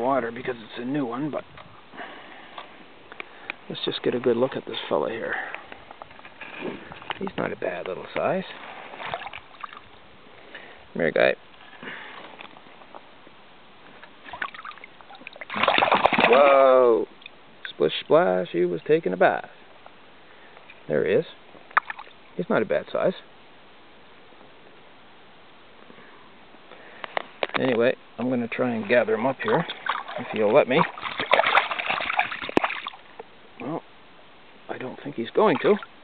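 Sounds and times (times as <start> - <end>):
stream water trickling: 0.0 - 23.7, 26.7 - 36.0
small water splashes: 5.5 - 10.0, 14.1 - 16.8, 21.7 - 22.4, 28.7 - 33.3, 35.3 - 36.0.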